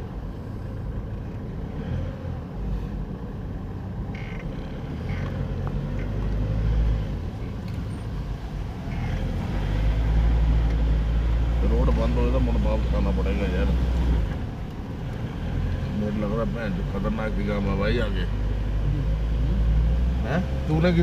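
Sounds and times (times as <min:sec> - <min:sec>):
tyre and road noise: 0:00.0 - 0:21.0.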